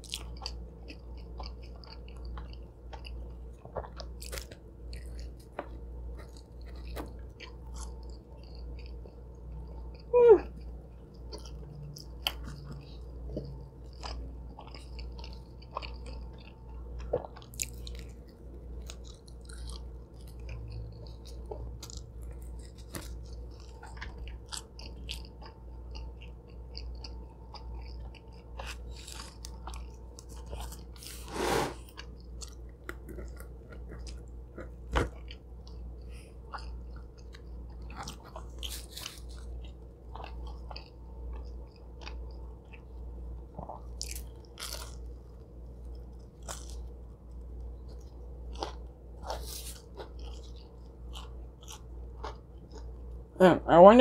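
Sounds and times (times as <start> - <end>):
chewing pizza crust crunches: 0.0 - 53.2
steady low hum: 0.0 - 54.0.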